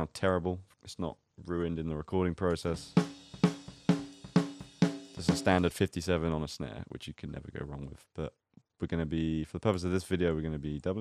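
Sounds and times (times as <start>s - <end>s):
snare drum hits: 3.0s - 5.6s.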